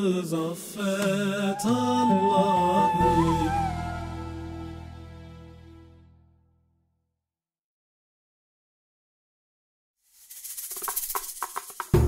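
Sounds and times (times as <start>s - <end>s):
rattling hand percussion: 10.1s - 12.0s.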